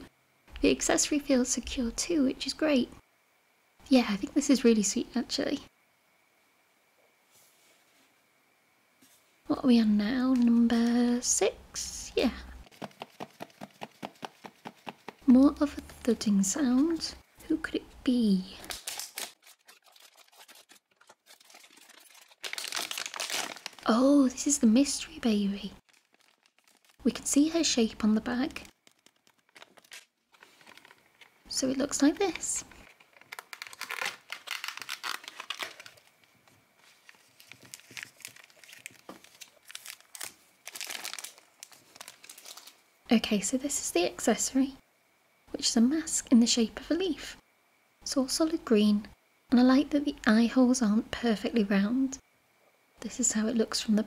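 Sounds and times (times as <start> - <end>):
toy knocking inside shaken bag: 12.7 - 15.2
plastic packaging crinkling: 18.6 - 42.8.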